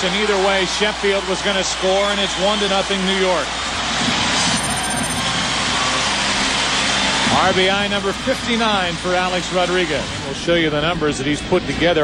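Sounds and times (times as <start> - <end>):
crowd cheering roar: 0.0 - 10.4.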